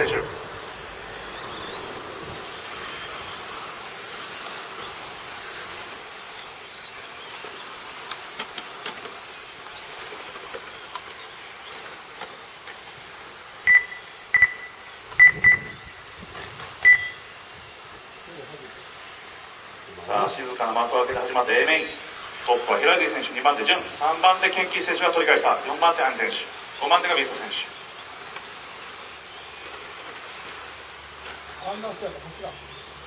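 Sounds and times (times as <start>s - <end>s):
rc car motors whining: 0.0s - 33.0s
short electronic beeps: 13.7s - 15.9s, 16.8s - 17.2s.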